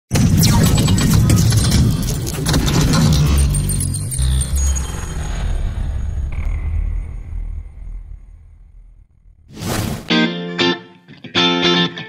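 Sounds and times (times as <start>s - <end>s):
low rumble: 4.3s - 9.5s.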